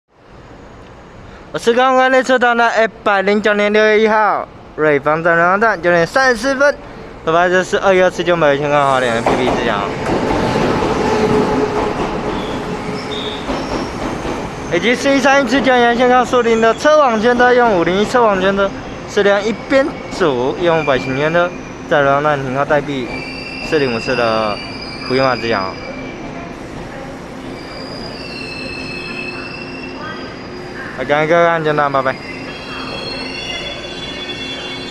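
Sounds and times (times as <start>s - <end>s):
train rumbling along rails: 5.8s - 34.9s
high-pitched wheel squeals: 12.3s - 14.9s, 22.9s - 26.3s, 27.4s - 31.2s, 31.9s - 34.9s.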